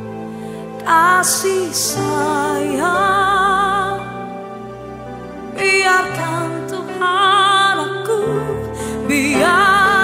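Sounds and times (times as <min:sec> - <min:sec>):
woman singing into a microphone: 0:00.8 - 0:04.4, 0:05.6 - 0:10.0.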